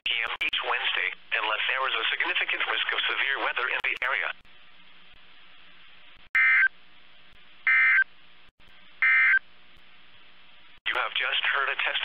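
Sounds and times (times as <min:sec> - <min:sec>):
faint radio hiss: 0:00.1 - 0:12.0
digital code bursts: 0:06.4 - 0:06.7, 0:07.7 - 0:08.0.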